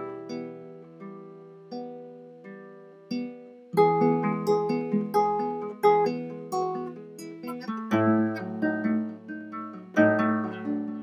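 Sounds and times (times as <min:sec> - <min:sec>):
acoustic guitar picking notes: 0:00.0 - 0:11.0.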